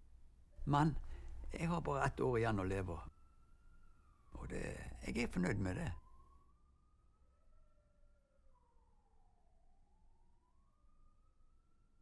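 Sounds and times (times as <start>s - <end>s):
distant wailing siren: 0.8s - 12.0s.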